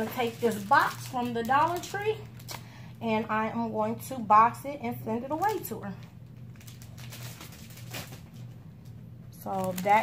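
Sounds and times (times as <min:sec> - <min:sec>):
cellophane crinkling: 0:00.0 - 0:03.0, 0:05.2 - 0:10.0
low steady hum: 0:00.0 - 0:10.0.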